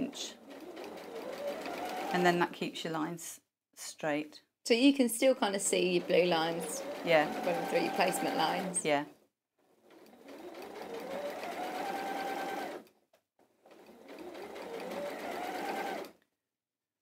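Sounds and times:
sewing machine stitching: 0.0 - 2.5, 5.4 - 9.0, 9.6 - 16.2.

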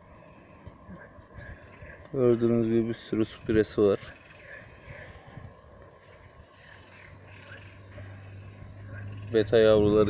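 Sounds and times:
high chirping calls: 6.0 - 9.8.

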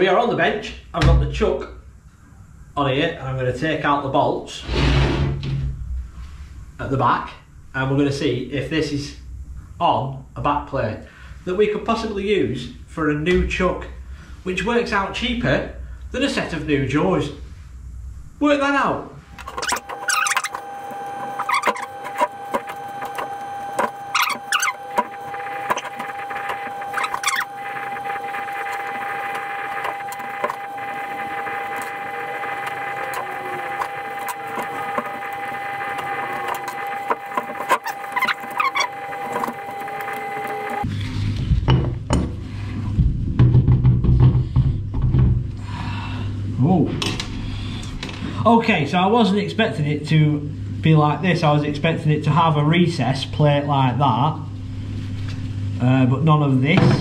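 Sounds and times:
steady held tone: 18.8 - 40.9.

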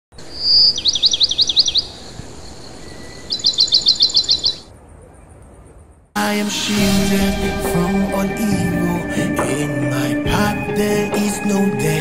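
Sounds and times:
songbird singing high notes: 0.2 - 4.7.

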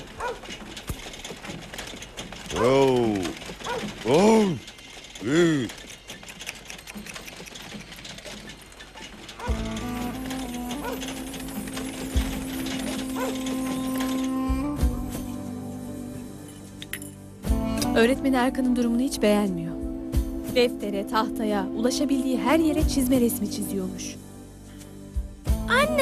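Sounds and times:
horse-drawn wooden cart rattling: 0.0 - 14.5
soft music: 9.4 - 26.0.

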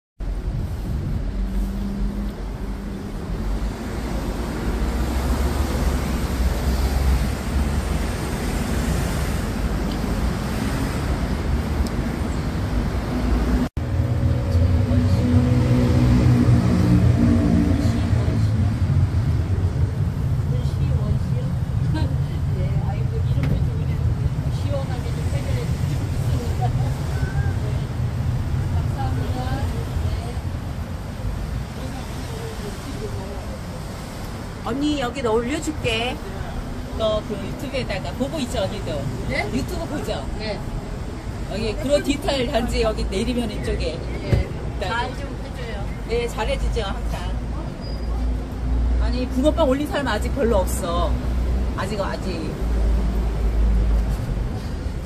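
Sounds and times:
road traffic rumble: 0.2 - 55.0
indistinct voices: 13.8 - 52.8.

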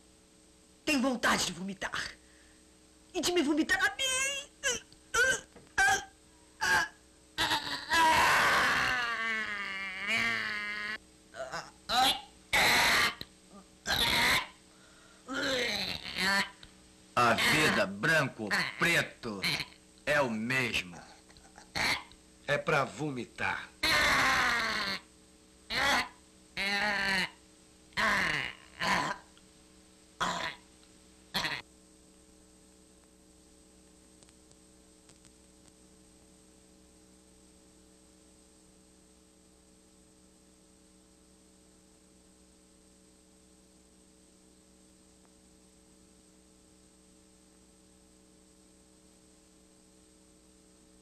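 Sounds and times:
faint steady hum: 0.0 - 51.0
woman retching: 4.6 - 14.6, 15.3 - 16.6, 21.4 - 22.2, 23.8 - 25.1, 25.7 - 27.4, 28.0 - 29.3, 30.2 - 30.6, 31.3 - 31.6.

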